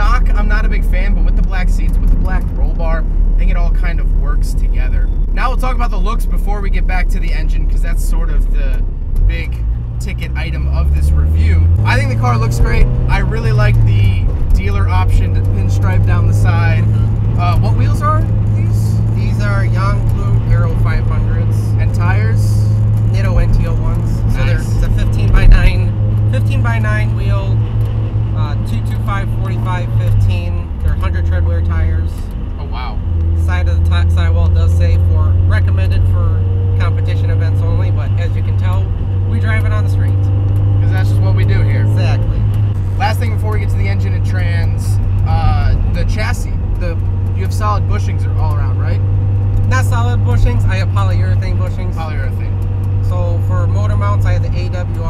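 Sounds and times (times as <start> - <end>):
person talking: 0.0 - 27.6, 28.4 - 49.0
car engine drone: 0.0 - 55.0
road noise: 0.0 - 55.0.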